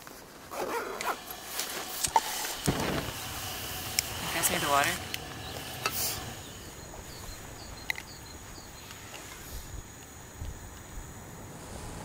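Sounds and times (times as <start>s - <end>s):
insects chirping: 0.7s - 12.0s.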